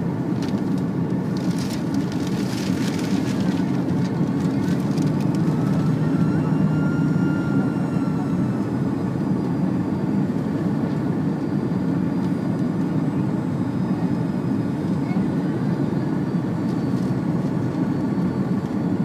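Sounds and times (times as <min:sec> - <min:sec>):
airliner cabin drone: 0:00.0 - 0:19.0.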